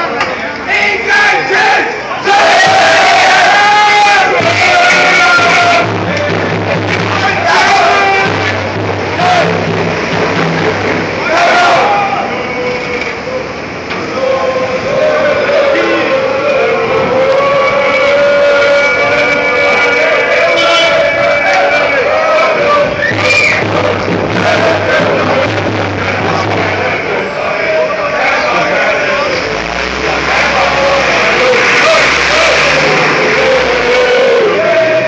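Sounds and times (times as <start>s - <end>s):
crowd noise: 0.0s - 35.0s
football fans singing: 0.0s - 35.0s.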